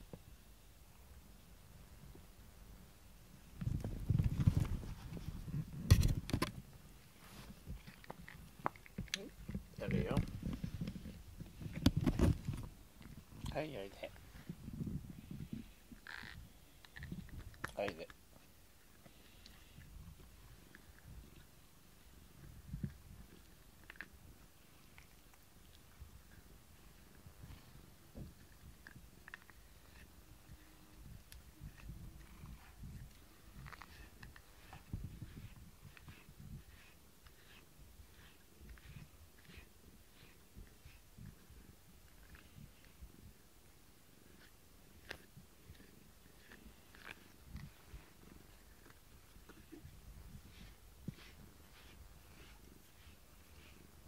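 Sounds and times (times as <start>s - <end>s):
brush on fur: 6.6s - 54.0s
cat purring: 25.8s - 43.4s, 44.0s - 54.0s.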